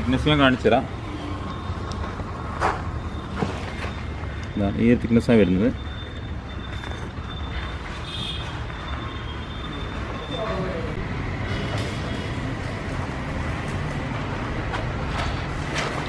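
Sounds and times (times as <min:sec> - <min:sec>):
low rumble of traffic: 0:00.0 - 0:16.0.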